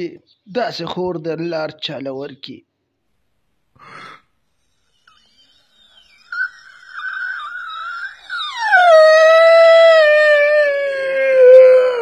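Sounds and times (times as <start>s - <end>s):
loud howling wail: 6.4s - 12.0s.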